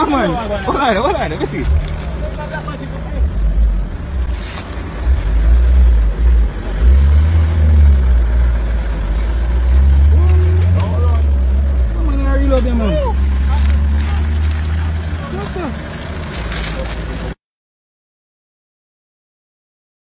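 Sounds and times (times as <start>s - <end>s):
voices speaking: 0.0s - 4.2s, 10.0s - 17.4s
low rumble: 1.5s - 17.3s.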